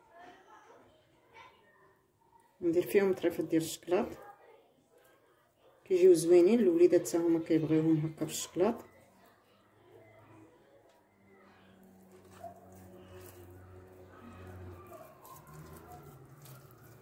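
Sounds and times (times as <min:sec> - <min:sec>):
sticky dough squelches: 0:11.7 - 0:17.0.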